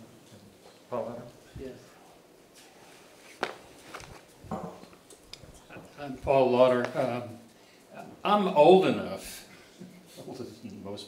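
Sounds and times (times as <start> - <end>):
shuffling movement: 2.6 - 4.5.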